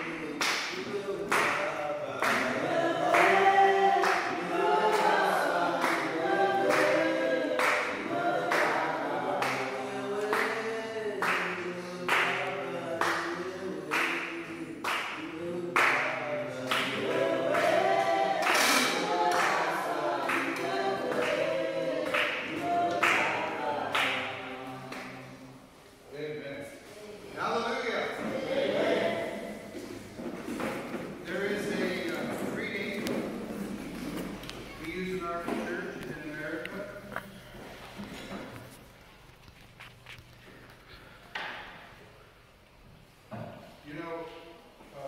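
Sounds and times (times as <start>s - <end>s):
hand claps: 0.0s - 3.4s, 7.6s - 8.8s, 11.2s - 13.3s, 13.9s - 21.4s, 22.0s - 24.2s
group singing unaccompanied: 0.0s - 25.9s, 27.4s - 37.0s.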